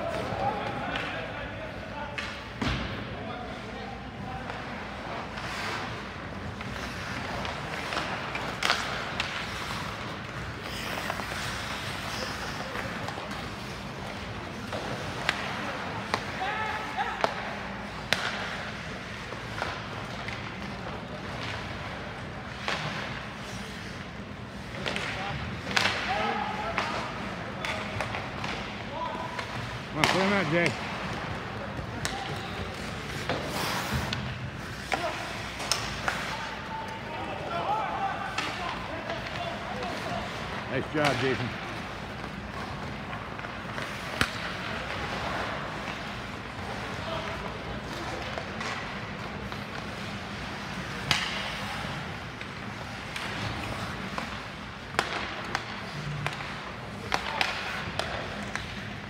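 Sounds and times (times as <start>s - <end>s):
hockey sticks and puck clacking: 0.0s - 59.0s.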